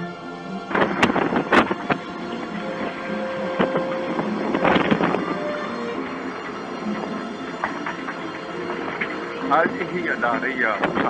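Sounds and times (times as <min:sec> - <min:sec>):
background music with held tones: 0:00.0 - 0:11.0
wind noise on microphone: 0:00.0 - 0:11.0.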